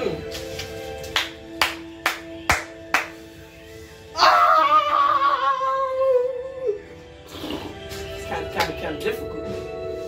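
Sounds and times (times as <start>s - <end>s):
music with held chord: 0.0s - 4.2s, 6.0s - 10.0s
sharp hand claps: 0.5s - 3.2s, 8.6s - 8.8s.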